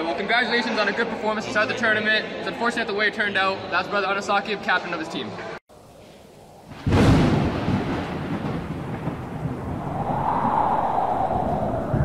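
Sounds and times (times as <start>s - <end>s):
long rumbling tail: 9.4s - 12.0s.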